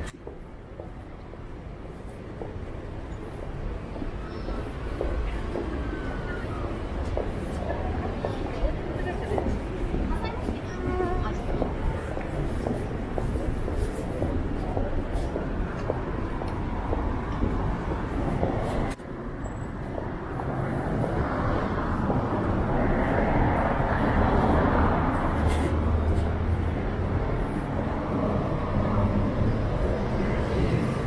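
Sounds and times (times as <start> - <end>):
road traffic: 0.0 - 31.0.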